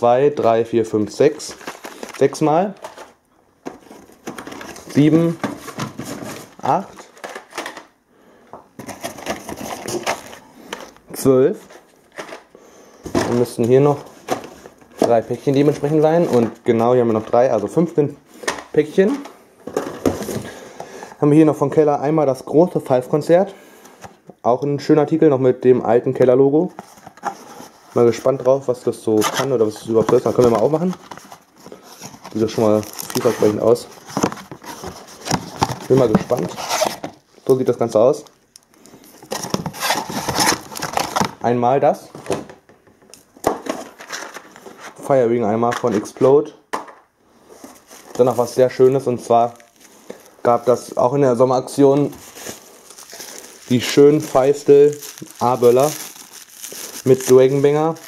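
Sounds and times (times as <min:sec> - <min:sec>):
cardboard rustling: 0:01.2 - 0:07.8, 0:08.8 - 0:12.5, 0:13.1 - 0:17.6, 0:29.1 - 0:38.0, 0:39.0 - 0:41.4, 0:47.4 - 0:58.0.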